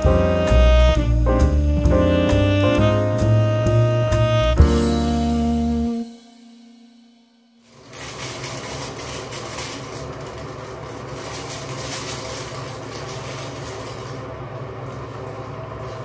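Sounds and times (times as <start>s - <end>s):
low mechanical hum with hiss: 0.0s - 6.6s, 7.6s - 16.0s.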